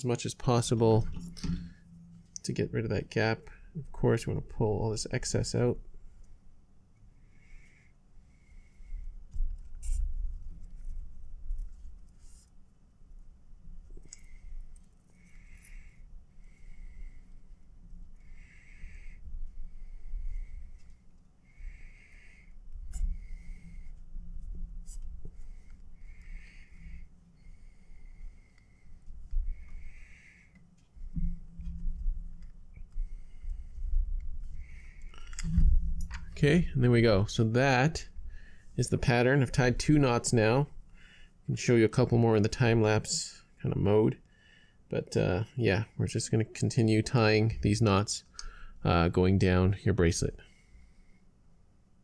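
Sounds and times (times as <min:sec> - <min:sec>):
soft breathing close to microphone: 0:05.8 - 0:12.6, 0:13.8 - 0:36.8, 0:38.0 - 0:38.9, 0:40.7 - 0:41.5, 0:44.2 - 0:44.9, 0:47.5 - 0:48.8, 0:50.4 - 0:51.6
cord bumping and rubbing: 0:30.8 - 0:36.4.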